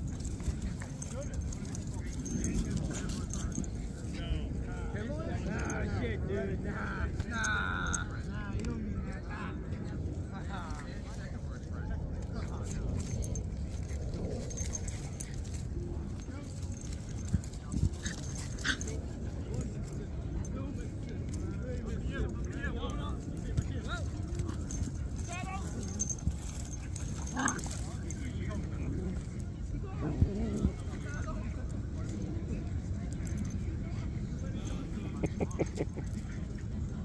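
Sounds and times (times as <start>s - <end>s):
dogs playing rough on grass: 0.0s - 4.2s, 12.2s - 22.4s, 23.1s - 32.3s.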